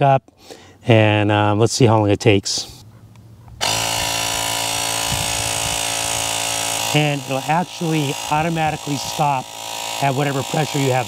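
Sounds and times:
electric tire pump compressor running: 3.6s - 11.0s.

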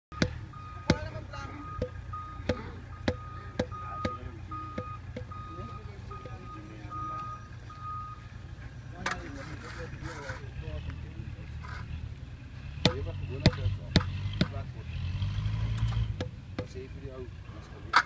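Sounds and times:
reversing alarm beeping: 0.1s - 8.3s
engine rumble: 0.1s - 18.0s
mallet tapping concrete: 1.8s - 5.3s.

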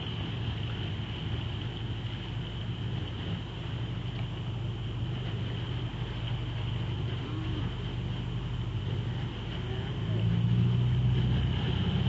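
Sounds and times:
outboard motor droning: 0.0s - 12.0s.

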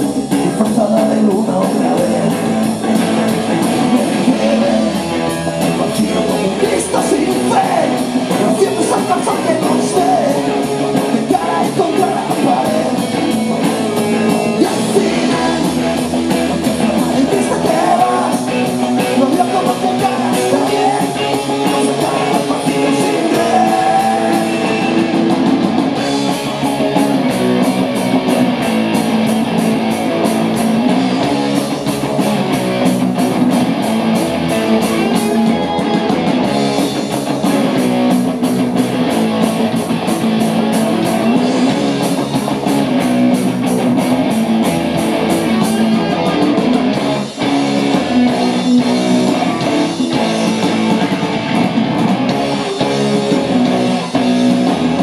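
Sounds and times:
bass guitar: 0.0s - 55.0s
drums: 0.0s - 55.0s
electric guitar: 0.0s - 55.0s.

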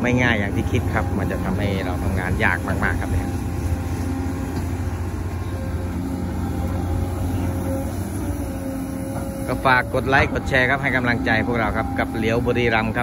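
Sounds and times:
excavator diesel engine running: 0.0s - 13.0s.

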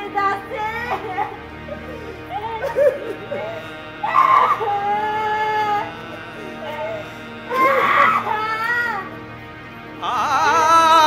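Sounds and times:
soft background music: 0.0s - 11.0s
loud crying wail: 2.6s - 9.2s.

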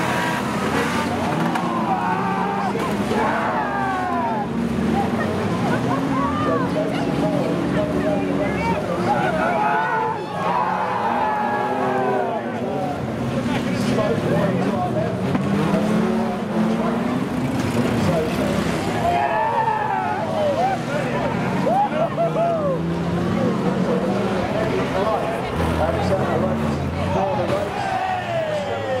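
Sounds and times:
car engines revving: 0.0s - 29.0s.

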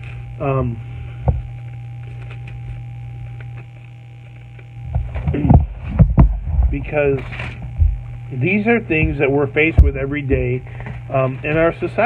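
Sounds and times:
phone microphone handling noise: 0.0s - 11.6s
electrical mains hum: 0.0s - 12.0s.

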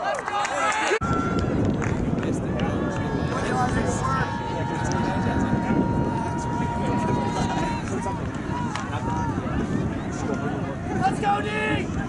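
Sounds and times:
wind rumbling on microphone: 1.0s - 12.0s.

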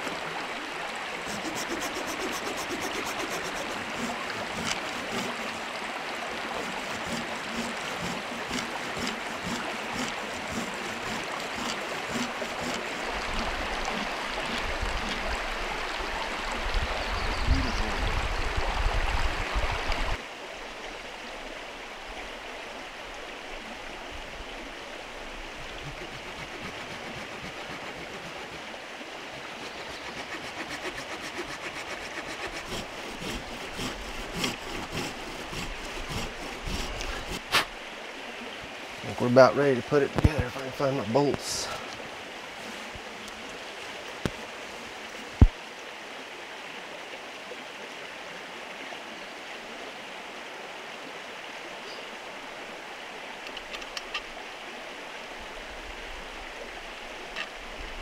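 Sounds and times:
knife carving wood: 1.3s - 5.6s, 6.6s - 13.2s, 25.8s - 28.7s, 29.6s - 37.7s.

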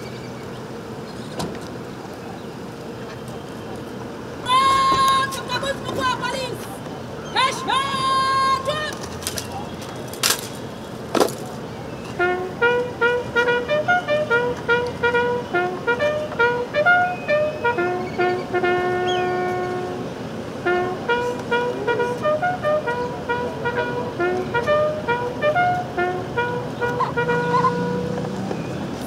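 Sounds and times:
bugle call: 4.4s - 9.6s, 12.2s - 28.2s.

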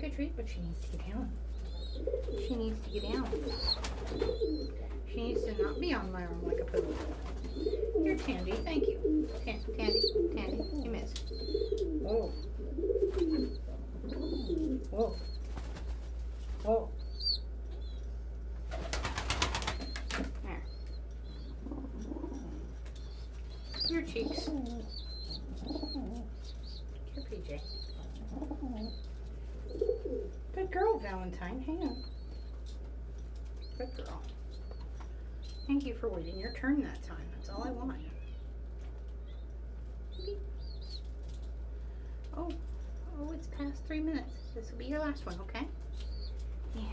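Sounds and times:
young pigeon peeping: 0.5s - 46.9s
pigeon wings flapping: 2.2s - 4.6s, 6.6s - 9.4s, 15.4s - 16.7s, 18.7s - 20.5s.

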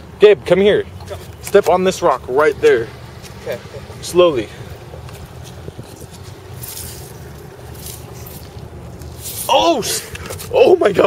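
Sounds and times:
wind buffeting microphone: 3.8s - 9.0s
footsteps on wet seaweed and sand: 5.0s - 10.6s.

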